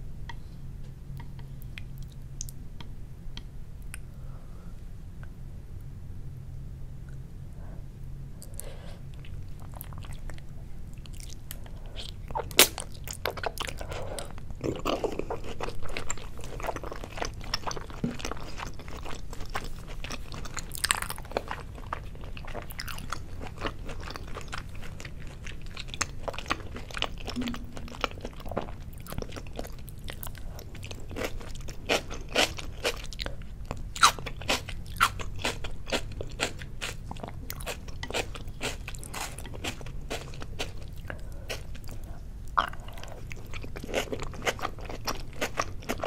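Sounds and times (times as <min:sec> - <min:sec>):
wet crunchy chewing: 0:08.4 - 0:46.0
wet chewing mouth clicks: 0:26.0 - 0:31.0.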